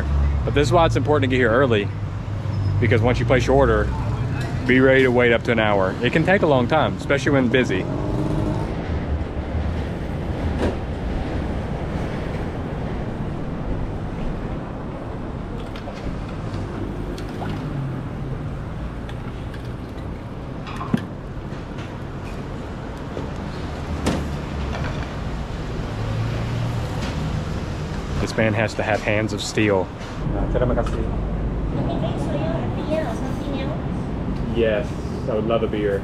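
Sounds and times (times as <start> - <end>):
road traffic rumble: 0.0 - 36.0.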